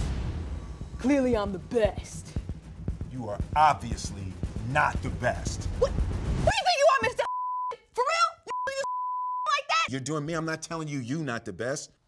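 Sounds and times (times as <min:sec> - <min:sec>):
censor bleep: 0:07.3 - 0:07.8, 0:08.5 - 0:09.5.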